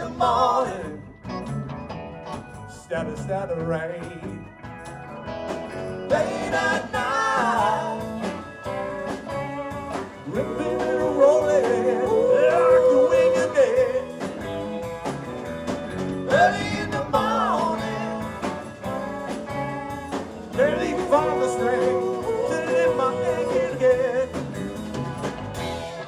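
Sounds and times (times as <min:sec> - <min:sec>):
bending guitar lead melody: 0:00.0 - 0:26.0
live blues-rock band: 0:00.0 - 0:26.0.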